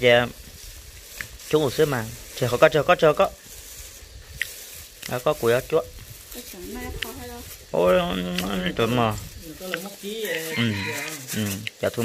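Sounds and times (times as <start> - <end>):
person talking: 5.1 - 12.0.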